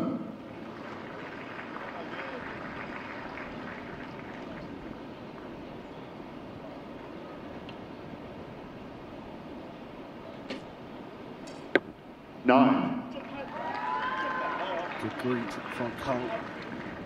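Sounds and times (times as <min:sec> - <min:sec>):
murmur of distant voices: 0:00.0 - 0:17.0.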